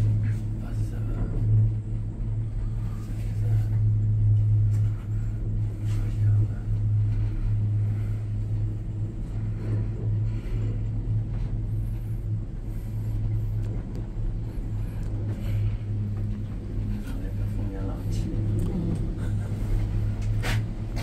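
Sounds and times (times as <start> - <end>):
cable car cabin hum and rumble: 0.0 - 21.0.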